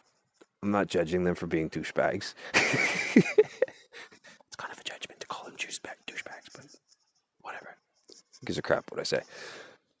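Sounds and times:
man whispering: 0:00.4 - 0:02.5, 0:04.2 - 0:06.8, 0:07.4 - 0:09.7.

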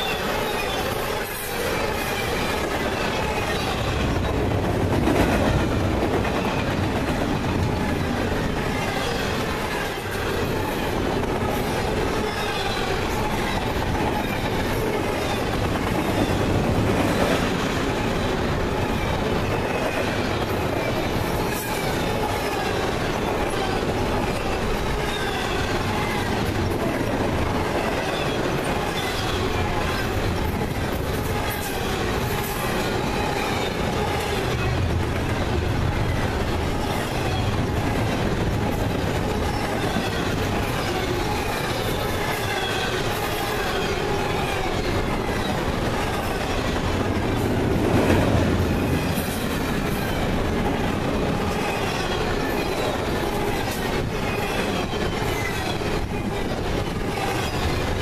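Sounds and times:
freight train rolling past: 0:00.0 - 0:58.0.

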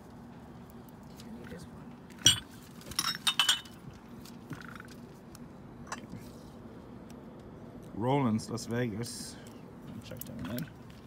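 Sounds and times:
glass ashtrays clinking: 0:02.2 - 0:03.8.

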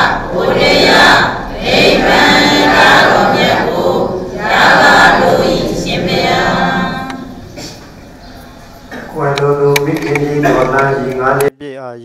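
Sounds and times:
voices chanting in unison: 0:00.0 - 0:07.4.

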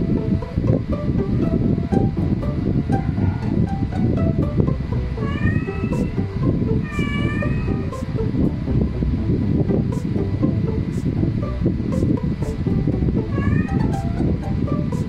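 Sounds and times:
background music: 0:00.0 - 0:15.0
cat meowing: 0:05.2 - 0:06.1, 0:06.8 - 0:07.8, 0:13.3 - 0:13.9.

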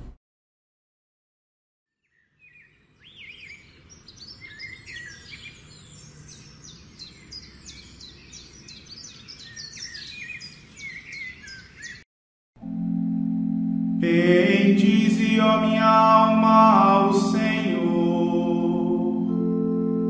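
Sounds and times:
small birds chirping: 0:02.0 - 0:12.0.

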